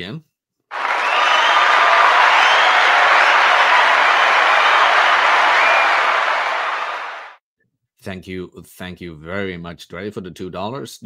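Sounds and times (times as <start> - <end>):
crowd applause and cheering: 0.7 - 7.4.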